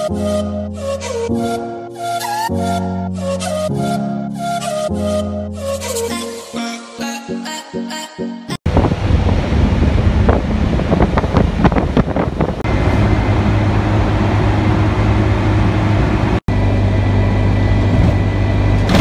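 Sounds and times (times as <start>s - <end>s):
flute-like music: 0.0s - 8.6s
low hum: 8.7s - 19.0s
vehicle engine and road noise: 8.7s - 19.0s.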